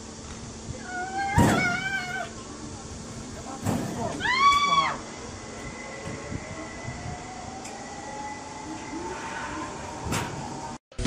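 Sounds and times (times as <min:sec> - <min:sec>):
zipline trolley whine on cable: 0:00.0 - 0:11.0
steady rushing noise: 0:02.3 - 0:11.0.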